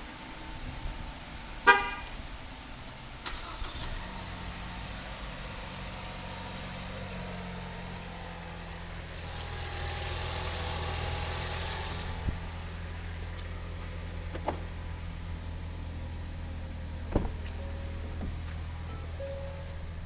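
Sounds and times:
car engine starting and idling: 0.0 - 20.0.

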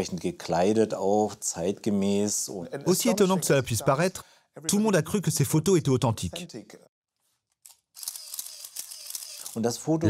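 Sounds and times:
camera shutter click: 8.0 - 9.7.

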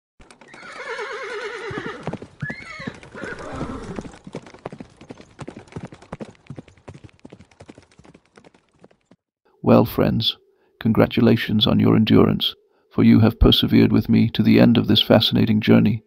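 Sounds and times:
hooves clip-clopping: 0.2 - 9.2
horse neighing: 0.5 - 4.2.

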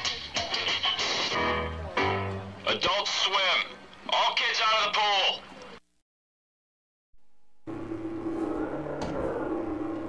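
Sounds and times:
electrical hum: 7.2 - 10.0.

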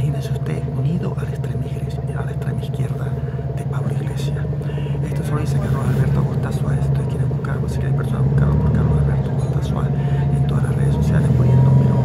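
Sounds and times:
vehicle low hum: 0.0 - 12.0.

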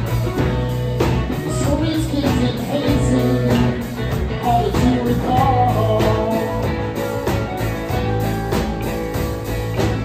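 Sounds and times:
drum kit beat: 0.0 - 10.0
electric bass: 0.0 - 10.0
electric guitars: 0.0 - 10.0.

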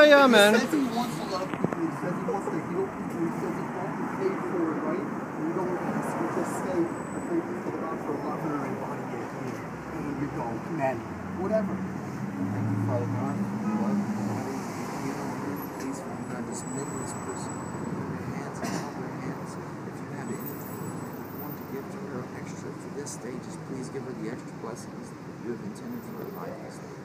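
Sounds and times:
street traffic noise: 0.0 - 27.0.

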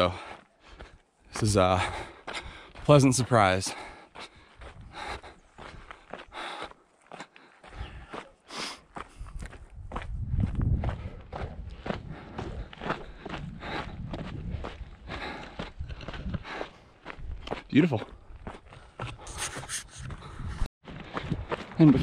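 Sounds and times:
running footsteps on rocky dirt: 0.0 - 22.0.

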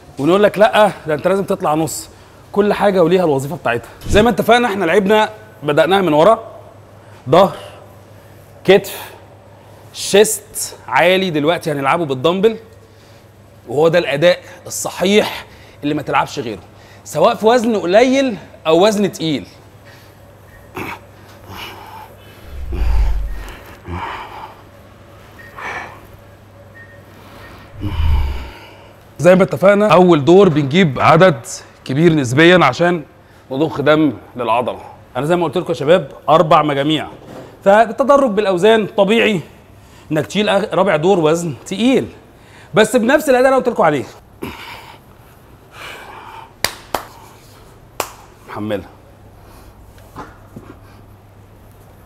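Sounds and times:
low rumble: 4.0 - 4.4, 22.4 - 23.8, 27.8 - 28.7
man exhaling forcefully: 22.4 - 24.1, 27.8 - 28.9.

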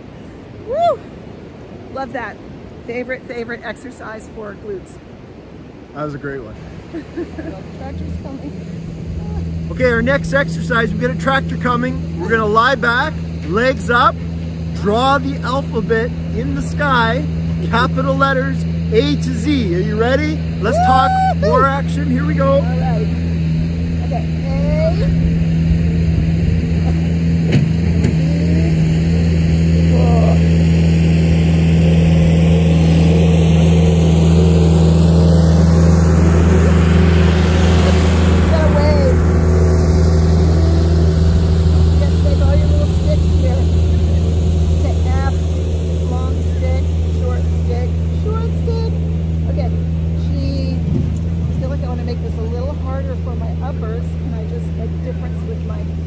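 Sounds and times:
tractor driving past: 6.7 - 56.0.

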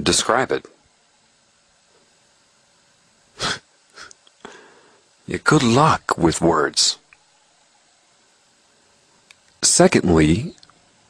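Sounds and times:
man sharply exhaling: 3.4 - 5.0.

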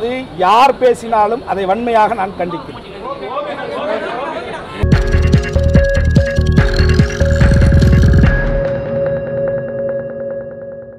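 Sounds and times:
electronic music with bass beat: 4.8 - 9.3.

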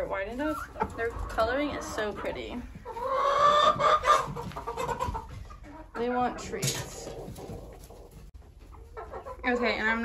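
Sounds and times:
hens clucking: 0.0 - 10.0.

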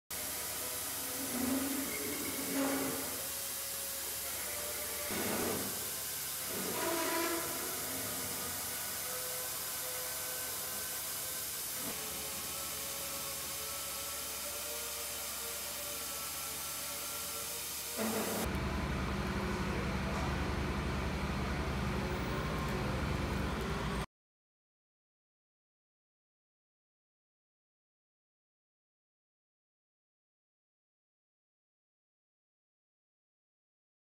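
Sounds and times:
air motor hissing: 0.2 - 18.6.

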